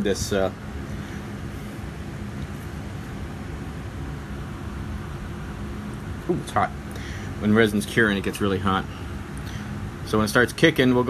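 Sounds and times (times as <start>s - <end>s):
constant hiss: 0.0s - 11.0s
machine hum: 0.0s - 11.0s.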